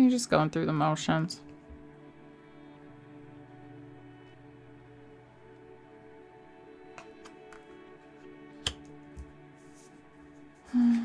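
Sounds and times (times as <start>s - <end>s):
soft ambient music: 0.0s - 11.0s
card tapped on table: 8.6s - 9.3s.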